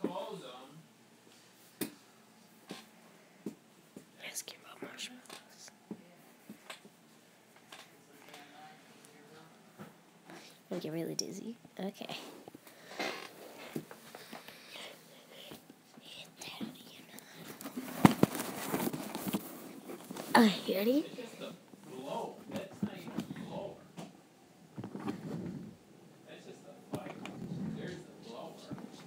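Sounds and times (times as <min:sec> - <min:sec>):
girl whispering: 0:04.2 - 0:05.7, 0:14.7 - 0:17.4, 0:20.3 - 0:21.1
phone rubbing against clothing: 0:24.8 - 0:25.8, 0:27.1 - 0:28.0.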